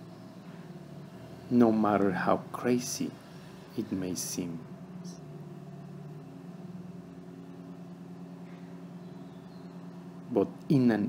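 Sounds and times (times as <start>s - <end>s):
low drone of held tones: 0.0s - 11.0s.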